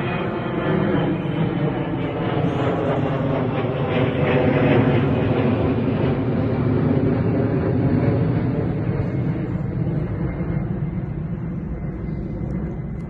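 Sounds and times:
loud engine drone: 0:00.0 - 0:13.0.

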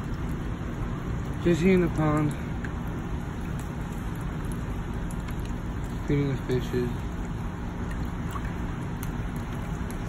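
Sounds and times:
fish feeding at water surface: 0:00.0 - 0:10.0.

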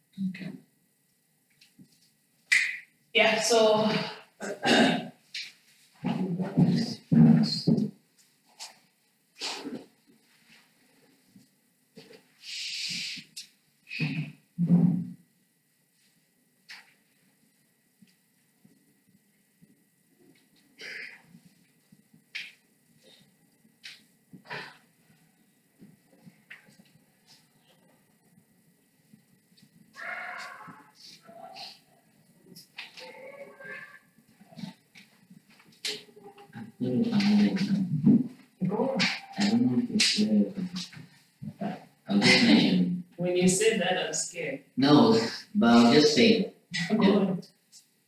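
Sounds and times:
indistinct voice: 0:06.0 - 0:07.8, 0:30.0 - 0:31.9, 0:33.0 - 0:34.7, 0:36.1 - 0:40.8, 0:41.5 - 0:43.5, 0:44.8 - 0:47.4
loud breathy hiss: 0:12.4 - 0:14.3.

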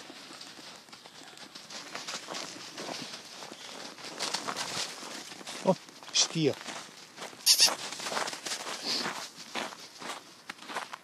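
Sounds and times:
footsteps crunching in snow: 0:00.0 - 0:11.0.

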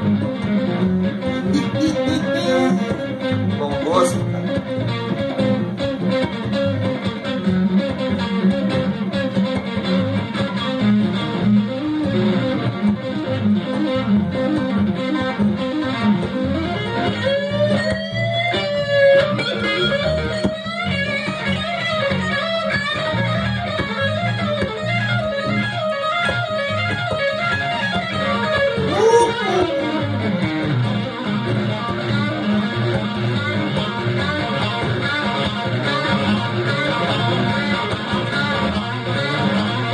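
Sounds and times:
bass guitar: 0:00.0 - 0:39.9
electric guitar solo: 0:00.0 - 0:39.9.

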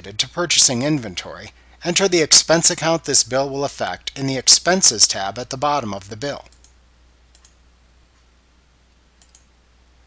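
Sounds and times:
computer mouse click: 0:06.5 - 0:07.6, 0:09.2 - 0:09.5.

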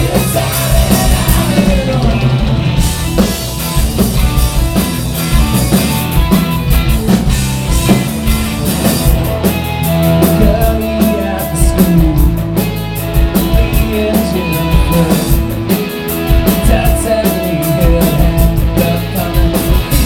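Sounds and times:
loud rock band playing: 0:00.0 - 0:20.0.

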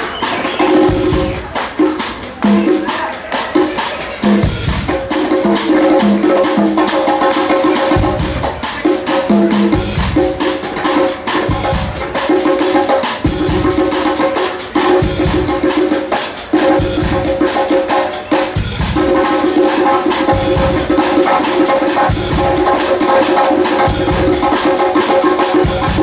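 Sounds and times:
drum kit with cymbal rhythm: 0:00.0 - 0:26.0
hand percussion: 0:00.0 - 0:26.0
held chords: 0:00.0 - 0:26.0
walking bass: 0:04.1 - 0:12.5, 0:13.2 - 0:15.9, 0:18.5 - 0:26.0.

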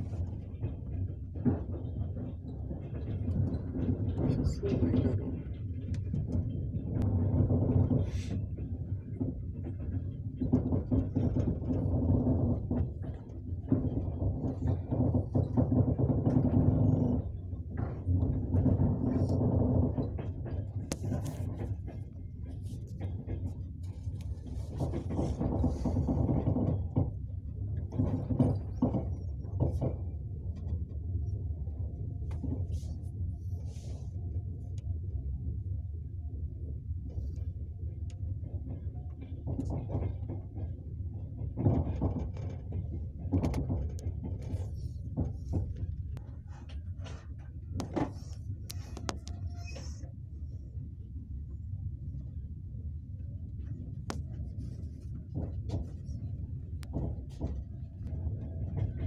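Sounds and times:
knocks and rattles: 0:00.0 - 0:31.1, 0:38.4 - 0:50.0, 0:53.6 - 0:59.0
train wheels rumbling on rails: 0:00.0 - 0:59.0.

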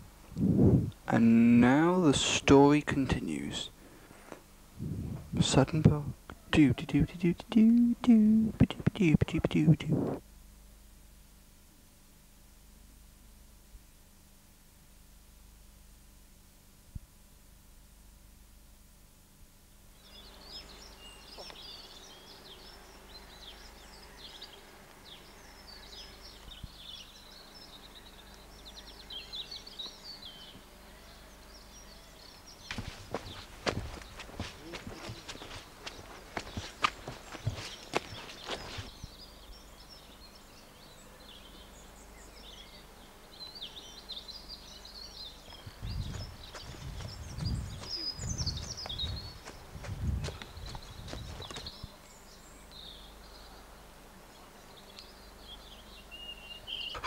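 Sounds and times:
low rumbling thumps: 0:00.3 - 0:01.1, 0:04.8 - 0:06.2, 0:45.8 - 0:51.4
small birds singing: 0:19.7 - 0:57.0
running footsteps: 0:32.7 - 0:38.9, 0:45.5 - 0:51.9.

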